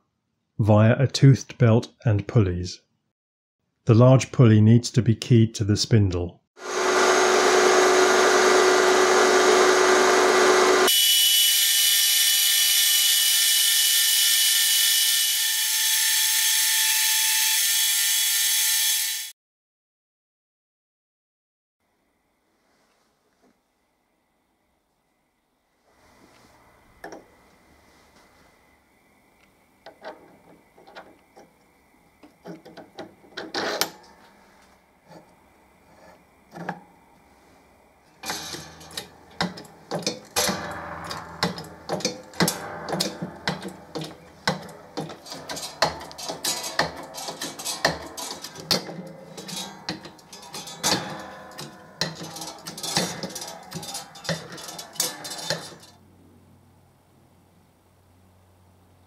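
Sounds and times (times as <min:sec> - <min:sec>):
metal clinks and knocks: 0:38.2 - 0:56.0
metallic clicks and crunches: 0:38.2 - 0:56.0.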